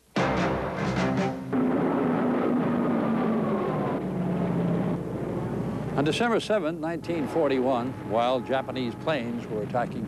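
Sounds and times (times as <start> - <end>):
aircraft engines droning: 0.5 - 10.0.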